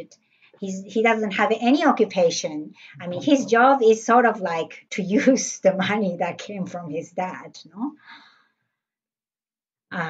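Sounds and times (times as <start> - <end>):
woman saying um: 3.0 - 4.0.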